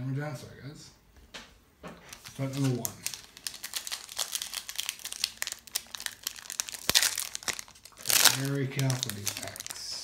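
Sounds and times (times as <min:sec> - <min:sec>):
foil wrapper crinkling: 0:02.1 - 0:10.0.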